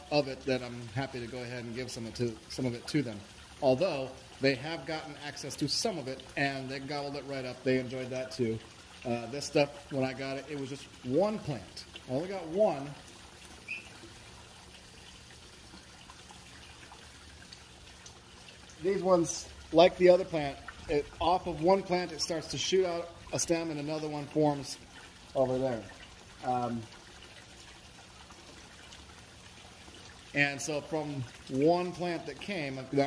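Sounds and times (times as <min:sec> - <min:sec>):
water trickling into pond: 0:00.0 - 0:33.0.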